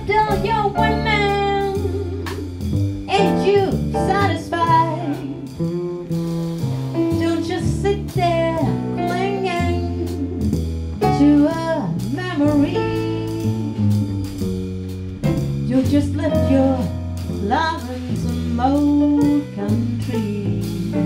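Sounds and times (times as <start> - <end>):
woman singing into microphone: 0.0 - 2.4, 3.1 - 5.5, 7.2 - 10.3, 11.0 - 13.6, 15.7 - 21.0
drum kit with cymbals: 0.0 - 21.0
upright double bass: 0.0 - 21.0.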